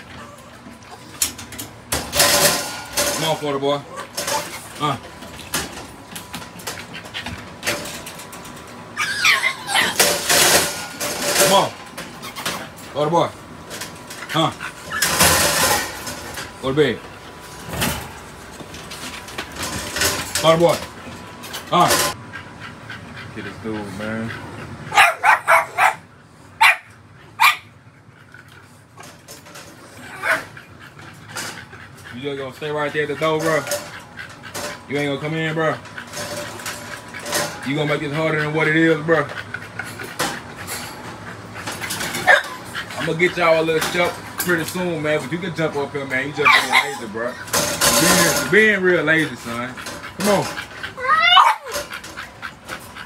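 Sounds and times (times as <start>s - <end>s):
dog whining: 0.0s - 1.3s, 8.9s - 10.3s, 14.6s - 15.5s, 29.8s - 31.0s, 36.5s - 43.2s, 46.3s - 48.6s, 50.1s - 53.0s
clicks and knocks from wire crates: 0.7s - 3.5s, 4.1s - 8.8s, 9.8s - 12.9s, 13.6s - 16.6s, 17.5s - 22.2s, 33.4s - 34.9s, 35.8s - 37.6s, 47.4s - 50.9s
dog barking sharply: 24.9s - 26.0s, 26.6s - 27.7s.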